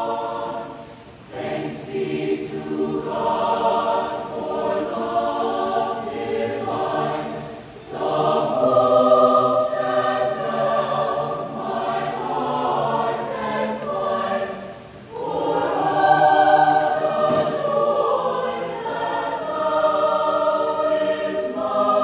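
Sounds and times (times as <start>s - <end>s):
mixed choir singing in harmony: 0.0s - 22.0s.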